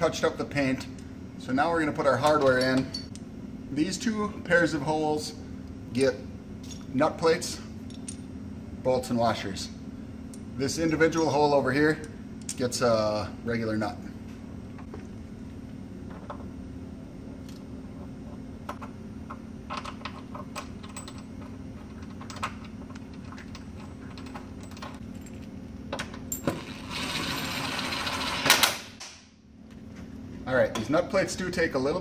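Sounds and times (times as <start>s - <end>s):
low shop hum: 0.0s - 32.0s
bolts clinking against steel: 2.2s - 3.2s.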